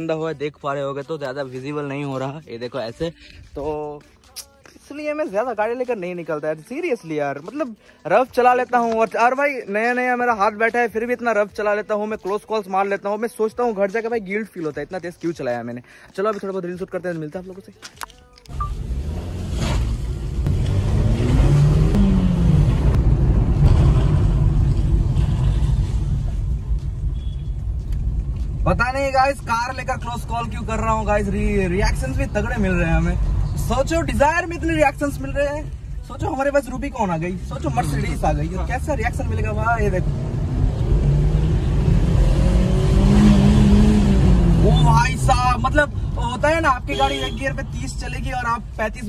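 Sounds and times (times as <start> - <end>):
car engine and tyre rumble: 18.0 - 49.0.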